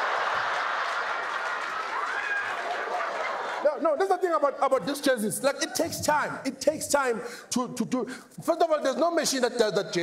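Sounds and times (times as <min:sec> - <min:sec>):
audience clapping: 0:00.0 - 0:03.6
audience laughing: 0:00.0 - 0:03.8.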